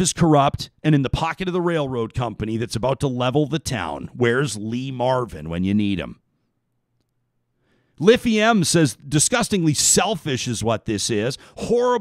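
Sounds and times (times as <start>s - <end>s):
man speaking: 0.0s - 6.2s, 8.0s - 12.0s
faint intake of breath: 7.5s - 8.0s.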